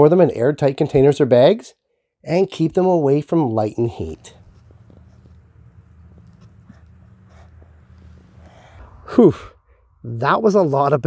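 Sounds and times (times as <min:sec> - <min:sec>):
faint low hum: 0:02.3 - 0:11.0.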